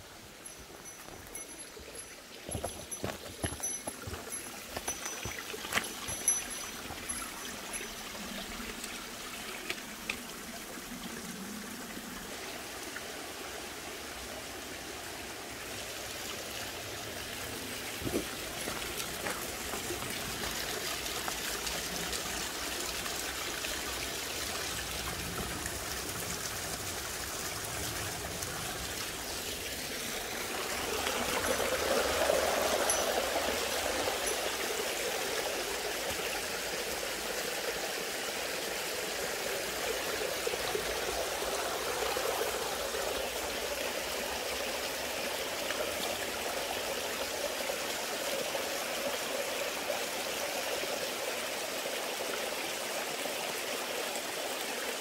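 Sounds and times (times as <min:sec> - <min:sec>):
stream trickling and splashing: 0:00.0 - 0:55.0.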